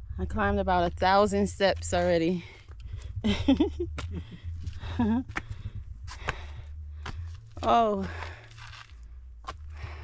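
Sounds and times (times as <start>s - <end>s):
steady low rumble: 0.0s - 10.0s
woman laughing: 3.2s - 5.4s
woman breathing breathlessly: 4.2s - 7.5s, 8.2s - 10.0s.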